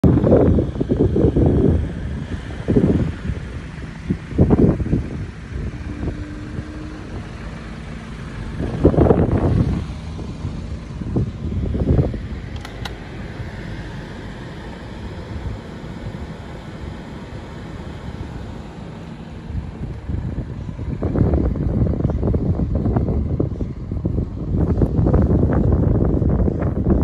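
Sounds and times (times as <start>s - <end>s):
wind buffeting microphone: 0.0s - 18.6s, 19.3s - 27.0s
low rumble: 0.0s - 27.0s
brief clicks: 12.5s - 13.0s.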